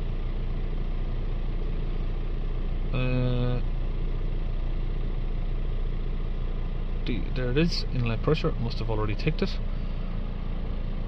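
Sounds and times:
diesel engine idling: 0.0 - 11.0.

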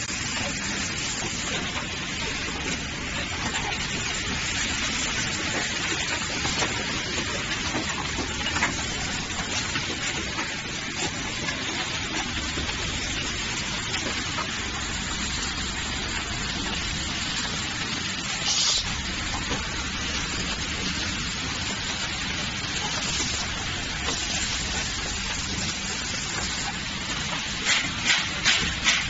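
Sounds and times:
machine hiss: 0.0 - 29.0.

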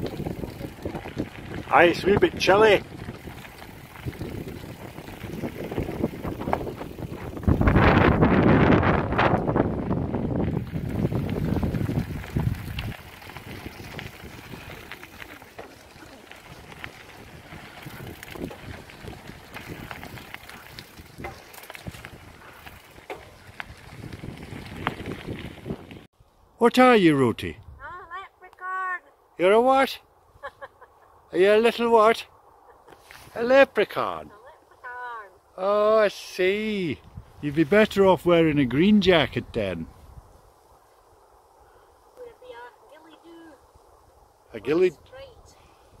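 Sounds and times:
wind buffeting microphone: 0.0 - 26.1, 36.8 - 41.6.

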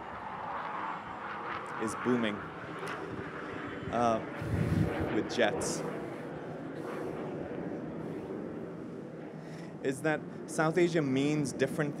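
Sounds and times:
jet aircraft flying overhead: 0.0 - 12.0.

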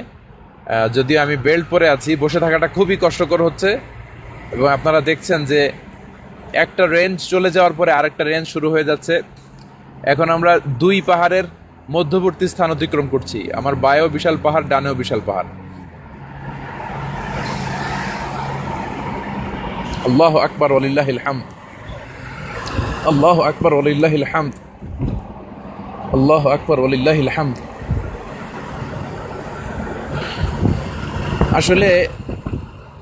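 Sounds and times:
road and wind noise: 0.0 - 33.0.

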